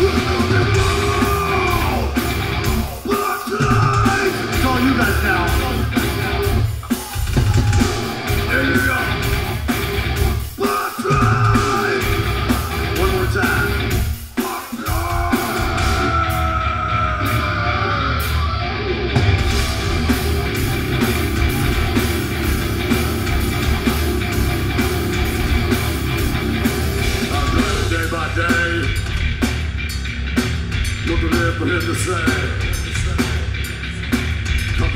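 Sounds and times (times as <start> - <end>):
heavy metal band playing: 0.0 - 34.9.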